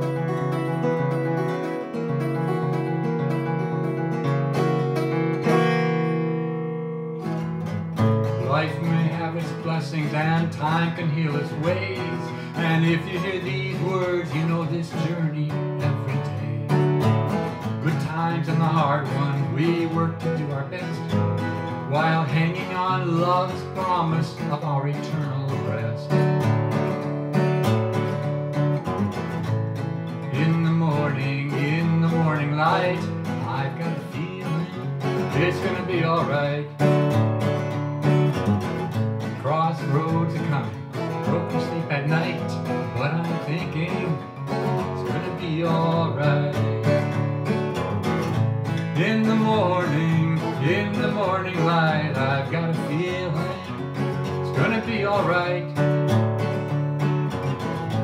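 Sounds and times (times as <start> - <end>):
acoustic guitar strumming: 0.0 - 58.0
man singing: 8.0 - 26.4, 30.1 - 37.7, 39.2 - 56.1.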